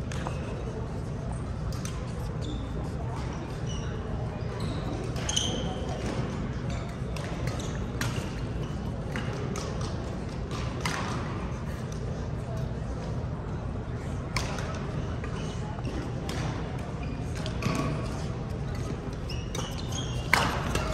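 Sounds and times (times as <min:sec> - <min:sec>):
shoes squeaking on court: 0:01.0 - 0:09.3, 0:16.9 - 0:20.9
rackets striking shuttlecock: 0:18.8 - 0:20.9.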